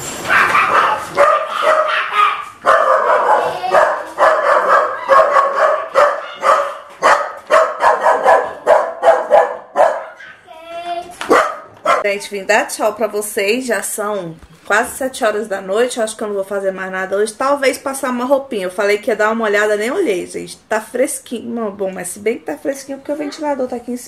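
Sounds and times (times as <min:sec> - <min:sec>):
dog barking: 0:00.3 - 0:10.4, 0:11.3 - 0:12.1.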